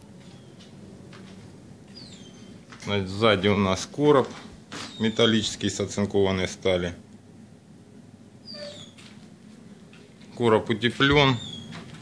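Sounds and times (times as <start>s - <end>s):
faint room noise: 0.0s - 12.0s
high-pitched animal call: 8.4s - 9.0s.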